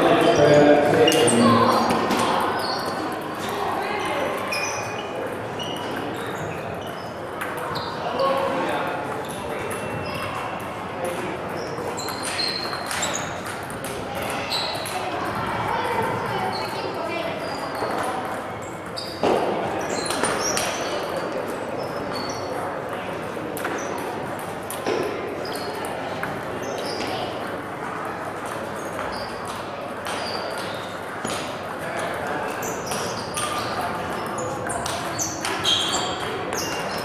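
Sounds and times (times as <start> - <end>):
background chatter: 0.0 - 37.0
table tennis balls clicking: 27.3 - 37.0.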